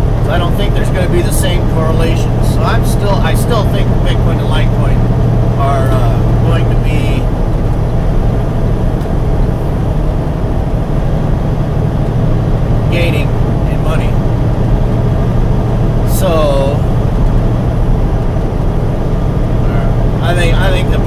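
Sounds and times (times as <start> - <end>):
diesel engine drone: 0.0 - 21.0
man's voice: 0.2 - 5.0, 5.6 - 7.3, 12.9 - 14.2, 16.1 - 16.9, 19.6 - 21.0.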